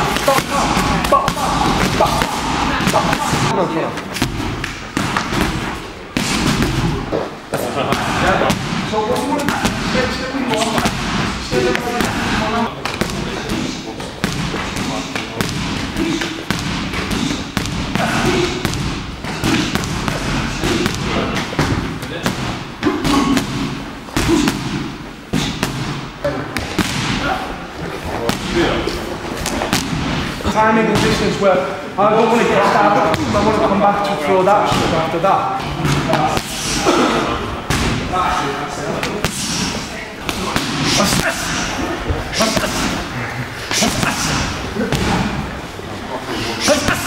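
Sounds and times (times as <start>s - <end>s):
people talking: 0.0s - 24.8s, 25.4s - 29.7s, 30.4s - 47.0s.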